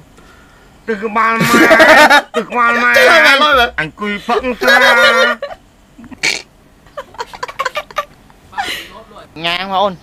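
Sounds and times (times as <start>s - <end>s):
man and woman laughing heartily: 1.4s - 9.0s.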